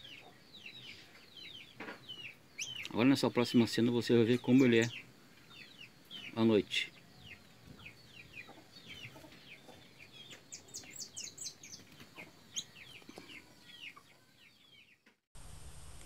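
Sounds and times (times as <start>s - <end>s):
birds chirping: 0.0s - 15.1s.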